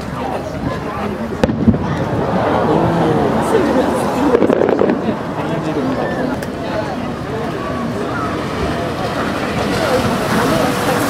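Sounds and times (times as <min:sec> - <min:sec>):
crowd chatter: 0:00.0 - 0:11.0
firework bang: 0:01.4 - 0:02.2, 0:04.3 - 0:05.2.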